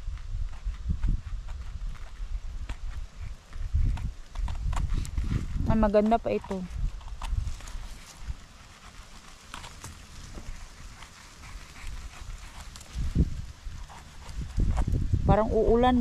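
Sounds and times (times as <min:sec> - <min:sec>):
wind rumble on microphone: 0:00.0 - 0:16.0.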